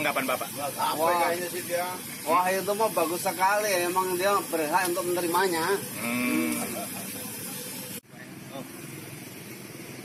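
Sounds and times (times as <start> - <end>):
hot oil sizzling in a wok: 0.0 - 10.0.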